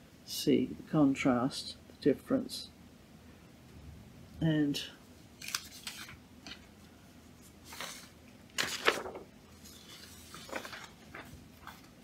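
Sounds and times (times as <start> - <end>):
paper rustling: 5.4 - 6.7, 7.4 - 12.0.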